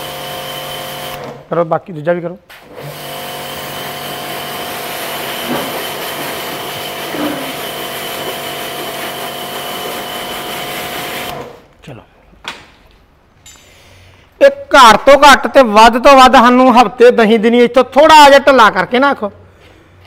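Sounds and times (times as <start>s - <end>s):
pressure washer motor humming: 0.0s - 1.4s, 2.7s - 11.6s
water jet spraying: 4.8s - 10.1s.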